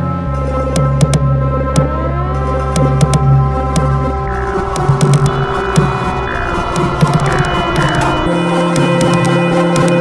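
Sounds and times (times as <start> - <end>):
low throbbing electronic drone: 0.3 - 10.0
sharp clicks: 2.7 - 10.0
steady held tones: 2.8 - 10.0.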